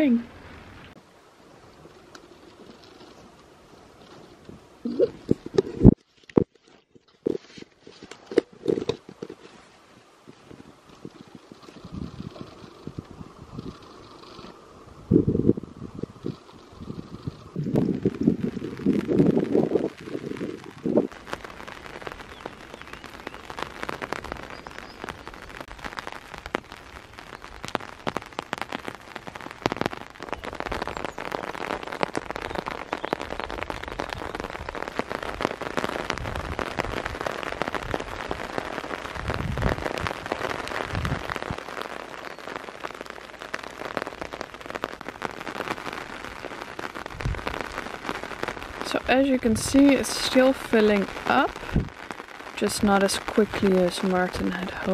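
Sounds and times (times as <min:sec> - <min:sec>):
rain falling on wet ground: 0:00.0 - 0:54.9.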